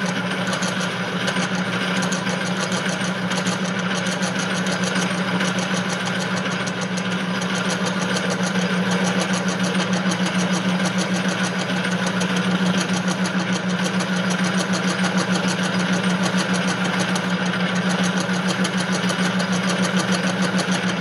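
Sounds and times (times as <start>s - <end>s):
metal lathe motor hum: 0.0s - 21.0s.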